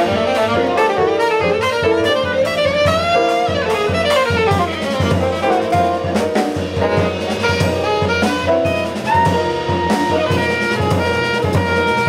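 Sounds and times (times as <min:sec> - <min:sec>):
double bass: 0:00.0 - 0:12.0
drums: 0:00.0 - 0:12.0
piano: 0:00.0 - 0:12.0
saxophones playing melody: 0:00.0 - 0:12.0.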